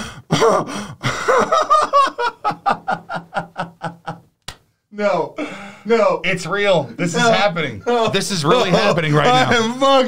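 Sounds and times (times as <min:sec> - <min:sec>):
man laughing hard: 0:00.3 - 0:04.2.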